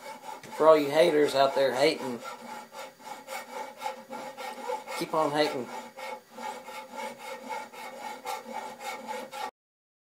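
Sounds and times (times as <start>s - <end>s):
repeated rasping strokes: 0.0s - 9.5s.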